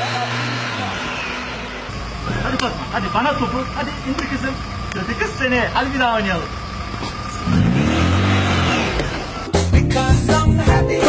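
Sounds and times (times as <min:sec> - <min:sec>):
car engine humming: 0:00.0 - 0:10.8.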